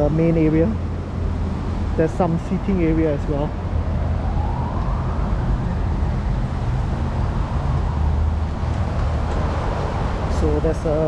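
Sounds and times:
low traffic rumble: 0.0s - 11.0s
distant siren wailing: 3.1s - 8.4s.

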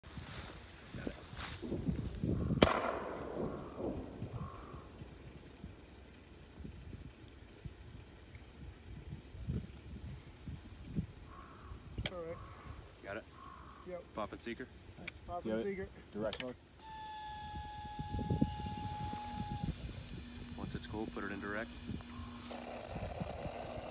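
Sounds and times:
sharp echoing bang: 2.6s - 4.8s.

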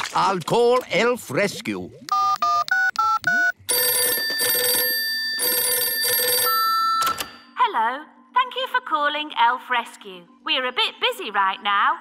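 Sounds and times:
phone keypad beeping: 2.1s - 7.5s
telephone ringing: 2.1s - 7.6s.

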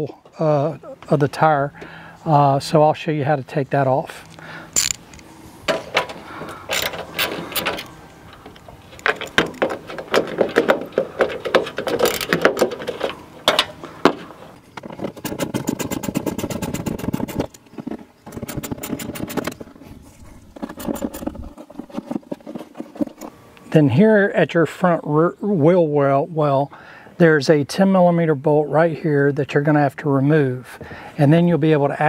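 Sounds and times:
ratchet wrench clicking: 4.3s - 5.2s.

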